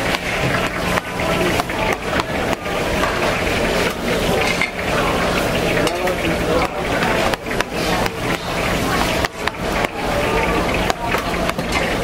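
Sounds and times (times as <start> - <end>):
deep-frying oil sizzling: 0.0 - 12.0.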